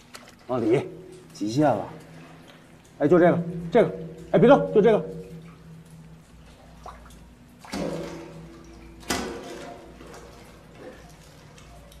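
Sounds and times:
water sloshing and dripping: 0.0 - 12.0
knocks ringing in pipe: 3.2 - 6.0.

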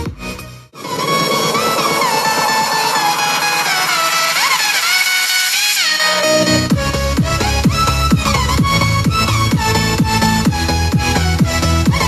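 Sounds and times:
electronic music: 0.0 - 12.0
heavy electronic beat: 0.0 - 12.0
gliding synth lines: 0.8 - 10.4.

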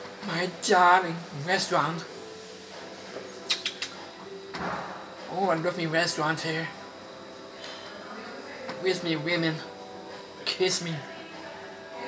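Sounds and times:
restaurant room tone: 0.0 - 12.0.

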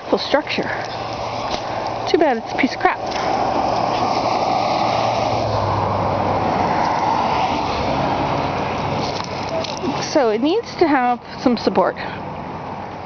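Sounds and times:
passing vehicle engine hum: 0.0 - 13.0.

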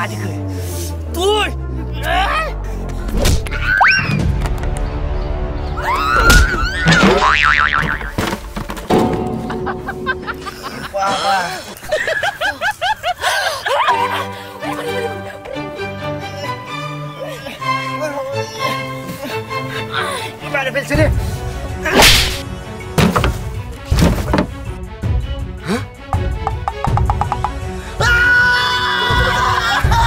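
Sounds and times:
cartoon falling glide boing: 6.8 - 8.2
knocks: 23.0 - 24.6, 26.2 - 27.6.

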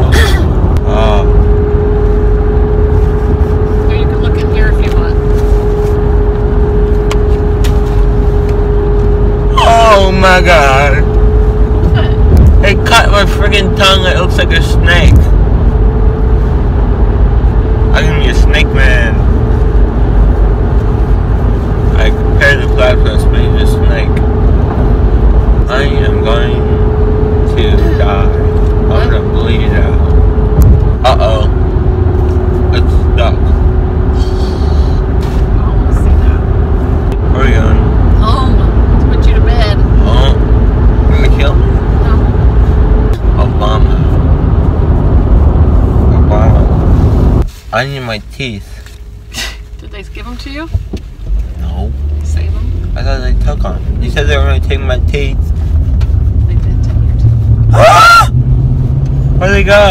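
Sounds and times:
car road and engine rumble: 0.0 - 59.9.

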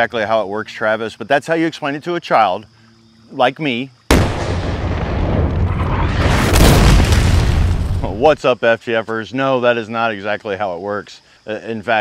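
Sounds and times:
explosion boom with deep rumble: 4.1 - 8.2.

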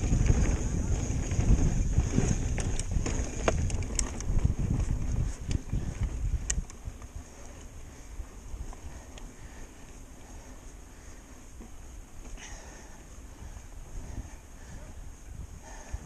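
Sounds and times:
bike clicks and rattles: 0.0 - 14.8
bike tyres rumbling over rock: 0.0 - 16.0
wind buffeting microphone: 0.0 - 16.0.

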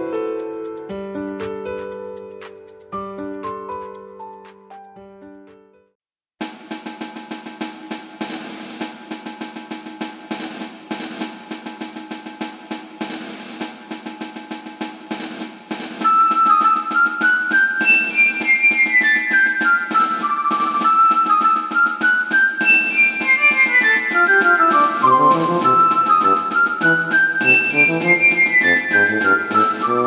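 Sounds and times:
drum pattern: 6.4 - 30.0
bright melody of short notes: 22.6 - 30.0.

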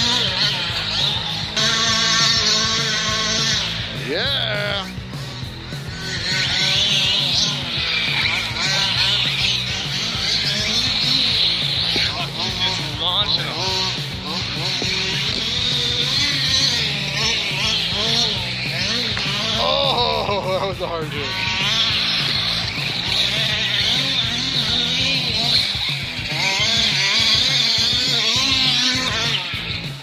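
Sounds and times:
radio-controlled car motors whining: 0.0 - 30.0
rock music: 0.0 - 30.0.

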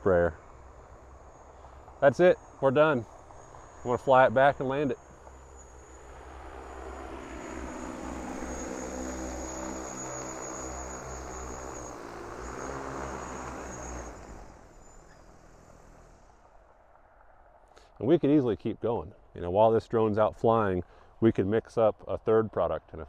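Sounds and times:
drone rotors humming: 0.0 - 17.4.

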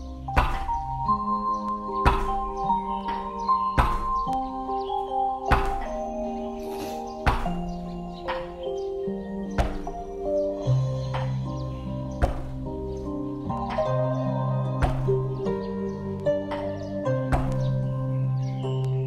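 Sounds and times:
slow background music: 0.0 - 19.0
back thumping against wall: 0.4 - 0.9, 2.0 - 4.3, 5.5 - 6.0, 7.3 - 7.7, 9.5 - 10.1, 12.2 - 12.7, 14.7 - 15.5, 16.6 - 17.8.

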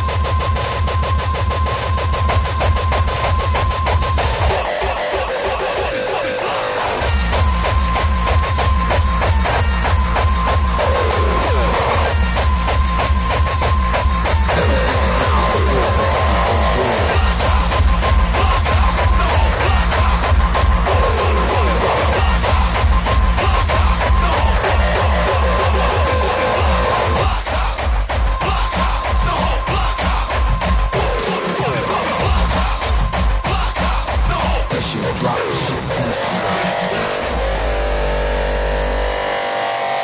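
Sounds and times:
hardcore electronic dance music: 0.0 - 40.0.

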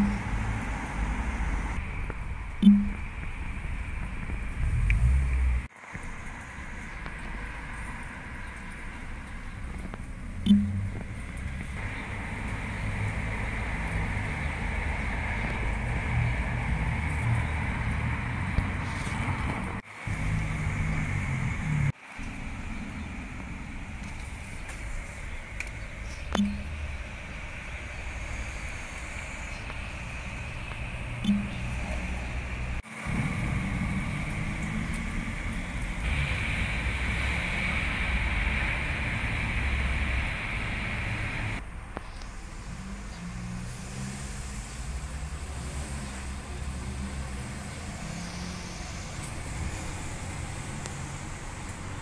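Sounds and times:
low rumble: 0.0 - 43.6.

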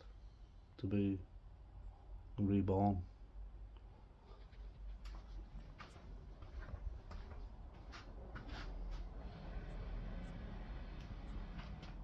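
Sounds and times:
faint footsteps on concrete: 4.3 - 9.2, 11.0 - 12.0
low steady rumble: 4.8 - 12.0.

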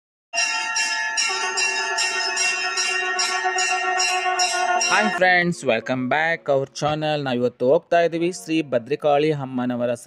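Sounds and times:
temple bell ringing: 0.4 - 5.9.

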